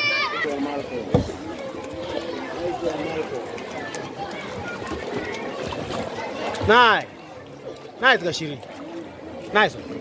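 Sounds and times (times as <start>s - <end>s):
people talking and calling out: 0.0s - 10.0s
water splashing from swimming: 0.0s - 10.0s.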